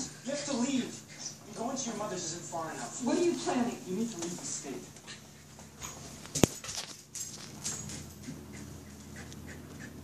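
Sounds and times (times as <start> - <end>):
dog moving about: 4.0 - 10.0.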